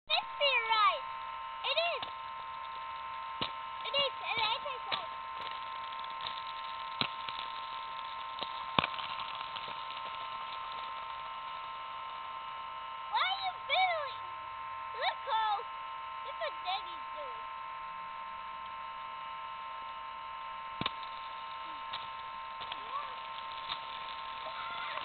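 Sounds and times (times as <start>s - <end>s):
steady multi-tone whine: 0.1s - 25.0s.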